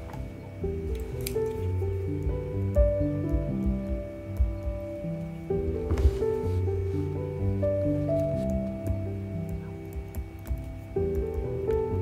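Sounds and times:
soft piano music: 0:00.0 - 0:12.0.

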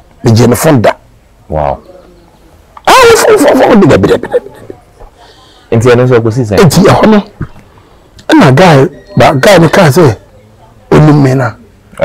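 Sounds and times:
man talking: 0:00.2 - 0:02.1, 0:02.8 - 0:04.8, 0:05.7 - 0:07.4, 0:08.2 - 0:10.3, 0:10.9 - 0:12.0.

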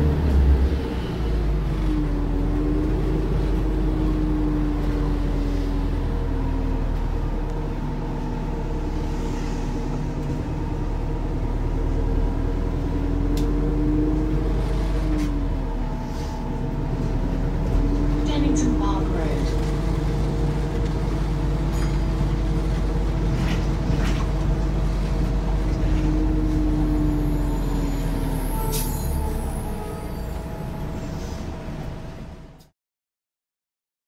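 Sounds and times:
bus drive and road drone: 0:00.0 - 0:32.7.

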